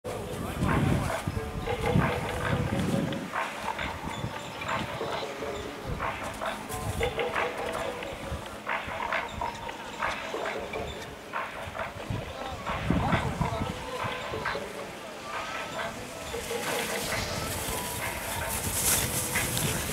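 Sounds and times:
people calling out and shouting: 0.1 - 19.9.

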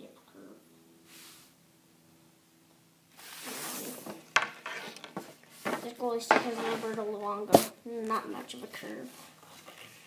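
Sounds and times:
hockey stick knocking: 4.1 - 7.7.

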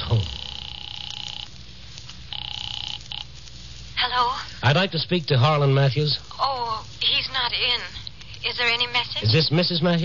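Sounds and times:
telephone ringing: 0.0 - 1.5, 2.3 - 3.3.

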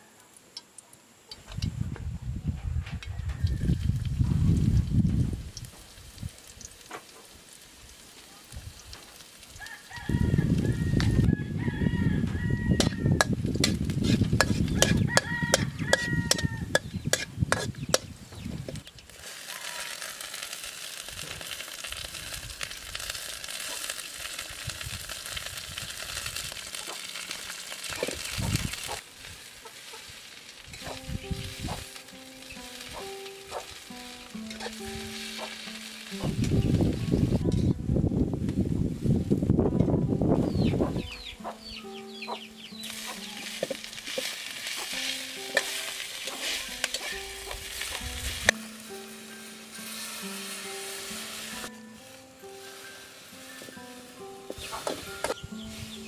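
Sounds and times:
oil sizzling in a wok: 3.4 - 37.5, 42.4 - 56.0
metal spatula scraping a wok: 12.8 - 18.1, 33.7 - 36.2, 42.8 - 56.0.

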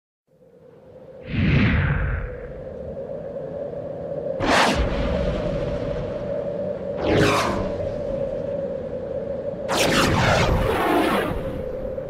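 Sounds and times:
low drone over rumble: 4.4 - 12.0.

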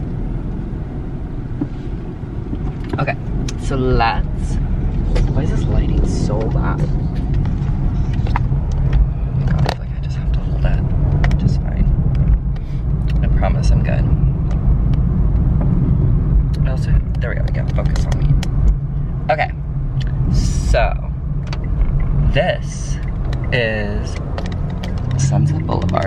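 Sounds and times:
car driving rumble: 0.0 - 26.0
light clicks and knocks: 11.1 - 13.3, 16.9 - 18.8, 23.0 - 26.0.

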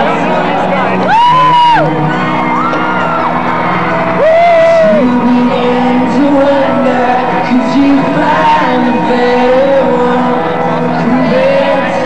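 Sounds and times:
live rock band playing: 0.0 - 12.0
audience high whoops: 1.0 - 5.1.

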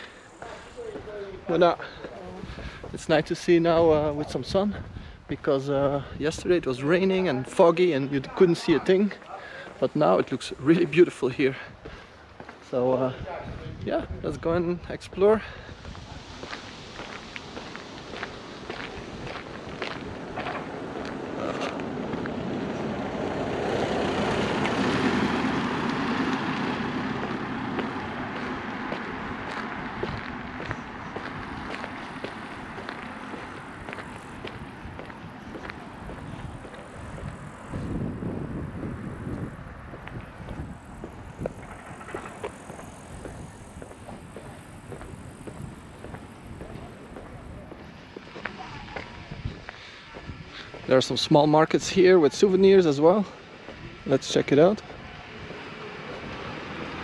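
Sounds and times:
footsteps on asphalt: 0.0 - 3.6, 8.7 - 12.7, 15.1 - 51.0, 53.4 - 53.8
vehicle passing on road: 0.0 - 12.6, 15.2 - 57.0.

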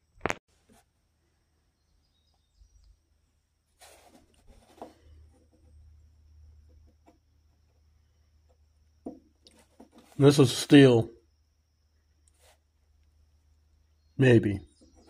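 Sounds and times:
metal knocks and scrapes on wood: 8.5 - 10.2.

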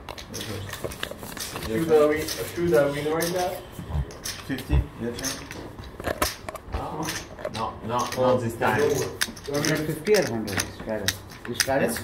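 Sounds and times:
players talking: 1.4 - 5.9, 6.7 - 12.0
poker chips clicking: 5.2 - 12.0.

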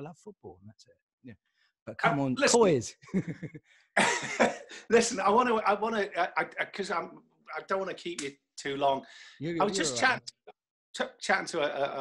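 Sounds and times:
men laughing: 3.0 - 4.9.

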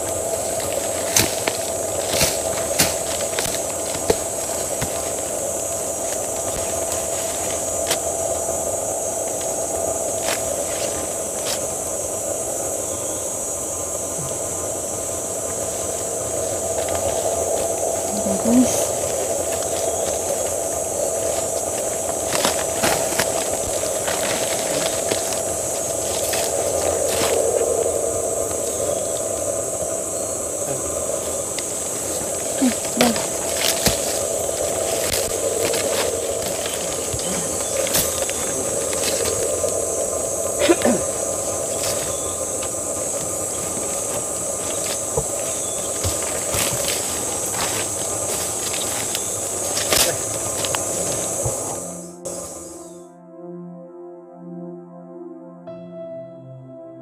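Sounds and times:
footsteps on twigs and leaves: 0.0 - 52.8
rustling through leafy undergrowth: 0.0 - 52.8
high-pitched hiss-like drone: 0.0 - 53.1
high-pitched insect buzz: 0.0 - 53.2
steady lower tone: 0.0 - 57.0.

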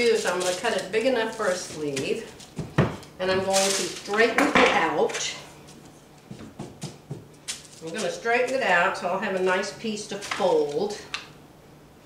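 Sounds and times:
fabric rustling: 0.0 - 2.6.

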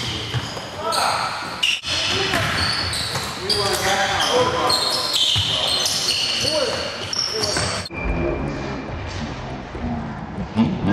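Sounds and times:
sneakers squeaking: 0.0 - 7.9
basketball bouncing: 2.1 - 3.9.

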